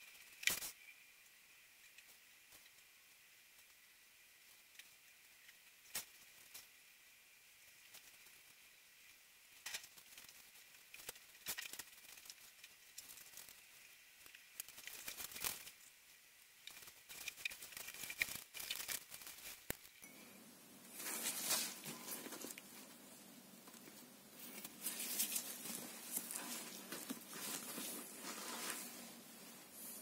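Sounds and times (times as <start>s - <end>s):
small clicks and crackles: 0.0s - 20.1s, 20.9s - 30.0s
rustle: 20.9s - 30.0s.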